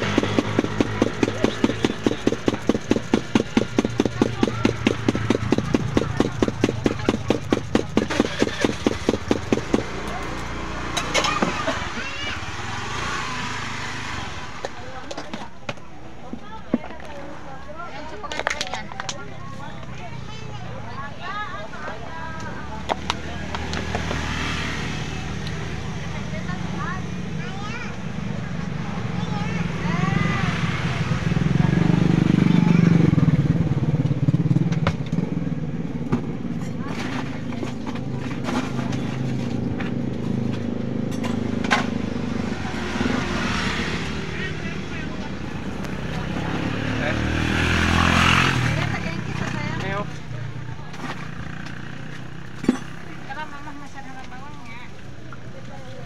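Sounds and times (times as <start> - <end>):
motorcycles passing: 0.0 - 56.0.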